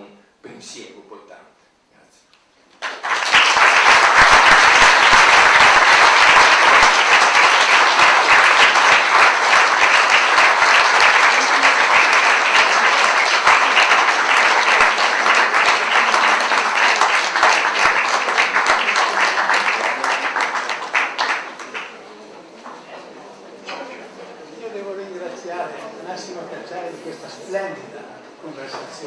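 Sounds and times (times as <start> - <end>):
audience applauding: 2.7 - 22.2.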